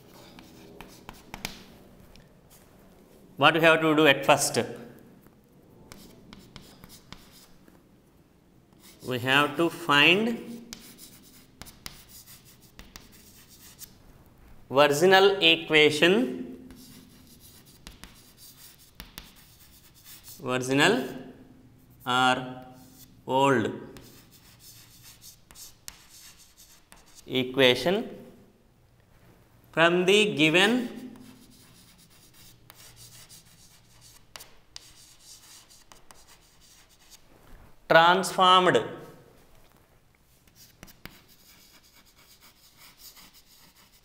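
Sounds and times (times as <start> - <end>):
chalk scratching on chalkboard: 0.0 - 1.7, 5.9 - 7.7, 8.7 - 14.0, 16.6 - 20.4, 21.0 - 23.2, 23.9 - 27.3, 30.7 - 37.3, 40.4 - 44.0
chalk tapping on board: 0.1 - 1.7, 5.9 - 7.5, 10.6 - 14.0, 16.7 - 20.4, 23.9 - 27.3, 31.0 - 37.2, 40.5 - 44.0.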